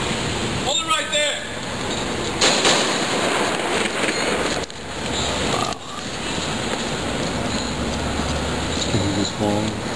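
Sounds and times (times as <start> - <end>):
city street noise: 0.0 - 9.9.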